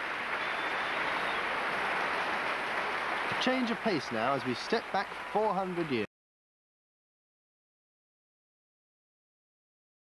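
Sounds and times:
audience applause: 0.0s - 6.1s.

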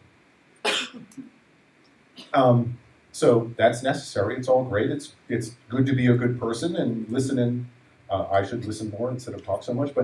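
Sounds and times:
person coughing: 0.7s - 1.1s.

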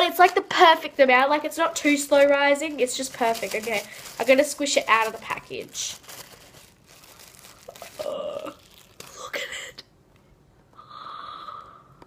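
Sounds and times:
plastic bag crinkling: 1.6s - 9.6s
person humming: 7.7s - 8.6s.

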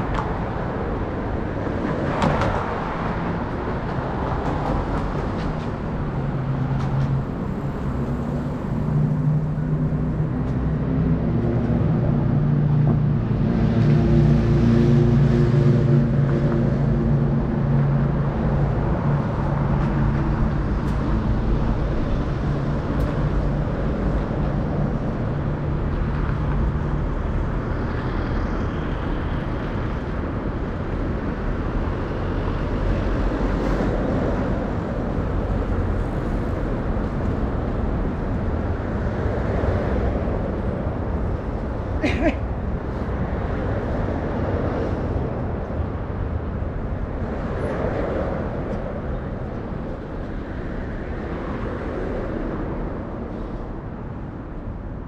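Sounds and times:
road traffic going by: 0.0s - 55.0s.

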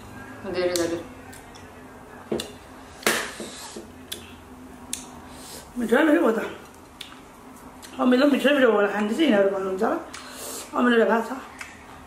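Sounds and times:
mouth clicks and smacks eating: 6.9s - 8.0s, 11.5s - 11.8s.

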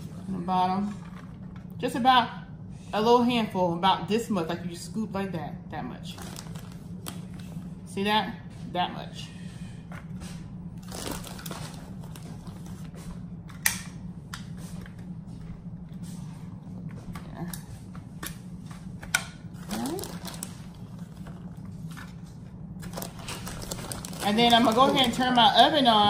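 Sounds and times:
steady low hum: 0.0s - 26.0s
plastic bag crinkling: 6.1s - 7.5s, 10.8s - 12.8s, 19.6s - 21.9s, 22.8s - 25.8s.

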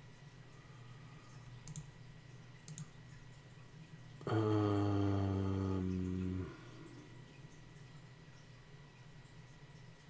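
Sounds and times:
faint electrical hum: 0.0s - 10.0s
man saying uhhh: 4.2s - 6.8s.

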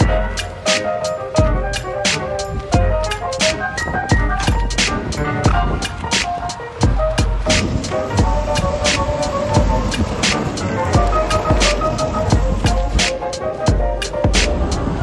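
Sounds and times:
lo-fi hip-hop music: 0.0s - 15.0s.

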